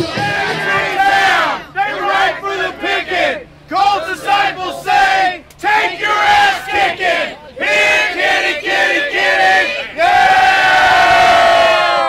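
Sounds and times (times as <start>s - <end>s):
crowd chanting in unison: 0.0s - 12.0s.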